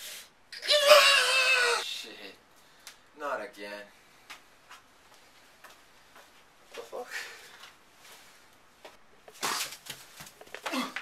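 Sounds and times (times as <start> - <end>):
high-pitched strained yell: 0.6 - 2.0.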